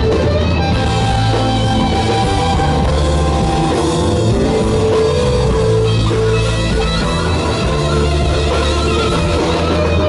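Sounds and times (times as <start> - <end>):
blues-rock band playing: 0.0 - 10.0
electric guitar long held note: 0.0 - 10.0.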